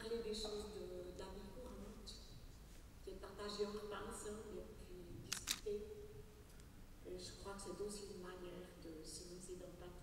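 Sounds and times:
sharp clicks: 0:05.3 - 0:05.6.

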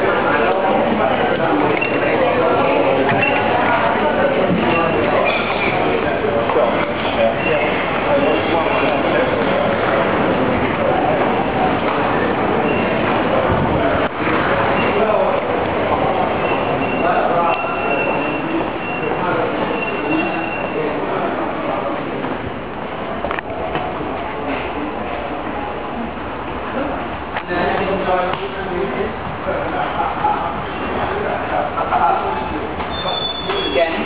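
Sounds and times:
hubbub of voices: 0:00.0 - 0:34.0
high wheel squeal: 0:16.3 - 0:21.0, 0:32.8 - 0:34.0
train wheels squealing: 0:32.9 - 0:34.0.

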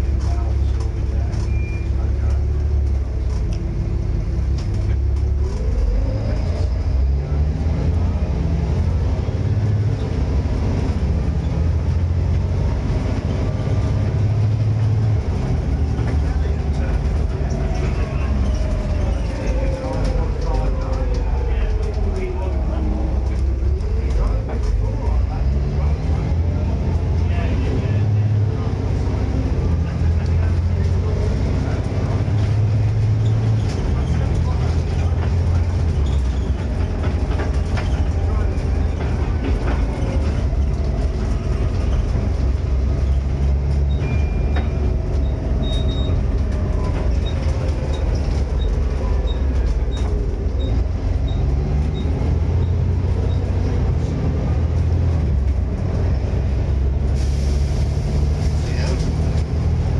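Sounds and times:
bus engine drone and whine: 0:00.0 - 0:59.9.

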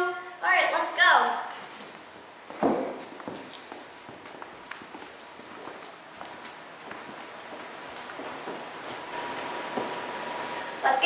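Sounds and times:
footsteps on hard floor: 0:01.8 - 0:10.6.

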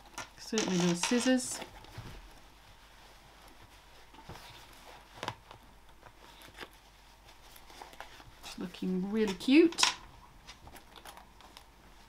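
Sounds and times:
fabric rustling: 0:00.0 - 0:12.0.

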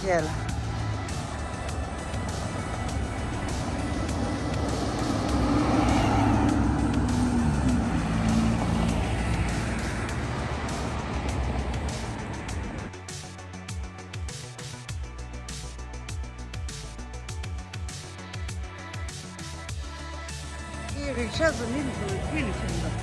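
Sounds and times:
car passing by: 0:00.0 - 0:12.9, 0:20.4 - 0:23.0
background music: 0:00.0 - 0:23.0.

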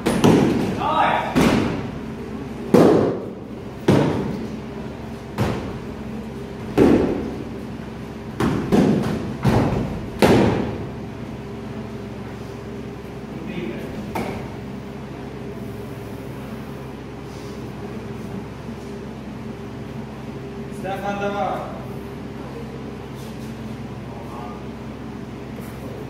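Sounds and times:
padded swords thudding on shields: 0:00.0 - 0:01.9, 0:02.7 - 0:04.6, 0:05.3 - 0:05.9, 0:06.6 - 0:07.4, 0:08.4 - 0:10.8.

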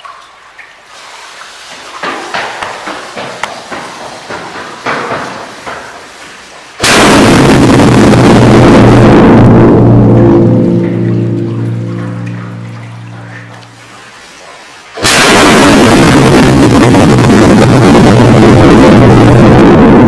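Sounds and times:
firecracker blast echoing: 0:06.8 - 0:14.1, 0:15.0 - 0:20.0.

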